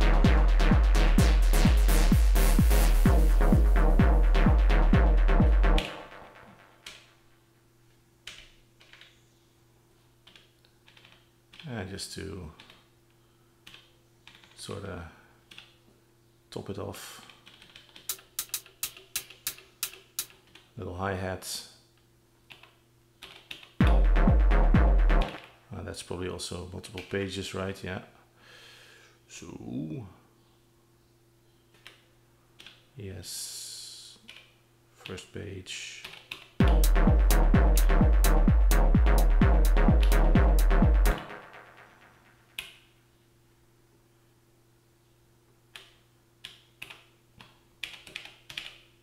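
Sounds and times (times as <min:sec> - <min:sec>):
synthesizer hi-hat hits: 0:00.0 - 0:06.8, 0:18.1 - 0:20.3, 0:23.8 - 0:25.5, 0:36.6 - 0:42.6.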